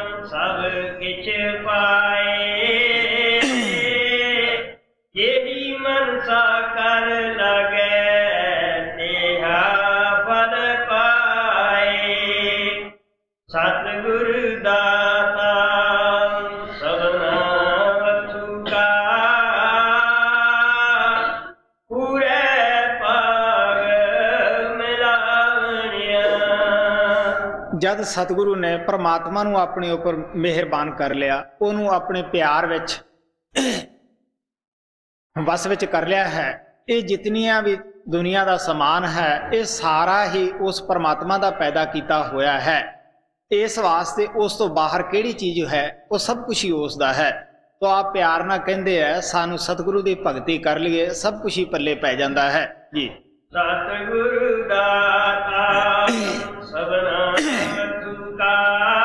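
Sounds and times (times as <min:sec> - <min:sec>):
man chanting a hymn: 0:00.0 - 0:12.8, 0:13.5 - 0:32.9, 0:43.5 - 0:59.0
man clearing his throat: 0:03.4 - 0:04.2, 0:33.6 - 0:34.0, 0:55.7 - 0:56.7, 0:57.4 - 0:58.0
man talking into a microphone: 0:27.7 - 0:33.0, 0:35.4 - 0:42.9, 0:43.5 - 0:53.2, 0:55.7 - 0:56.6.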